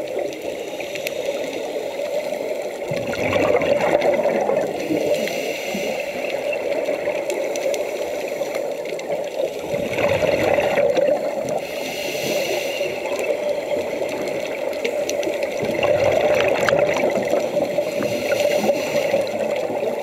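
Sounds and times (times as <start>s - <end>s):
scuba regulator exhaust bubbles: 0.0s - 20.0s
small clicks: 6.0s - 9.6s, 13.0s - 15.6s.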